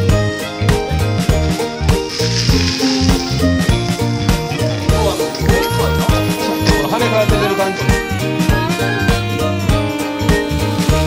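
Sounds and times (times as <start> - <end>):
water splashing onto wet pavement: 2.0 - 6.8.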